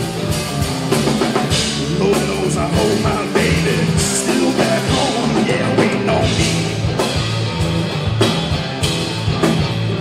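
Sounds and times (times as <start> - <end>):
drum kit: 0.0 - 10.0
electric bass: 0.0 - 10.0
electric guitar: 0.0 - 10.0.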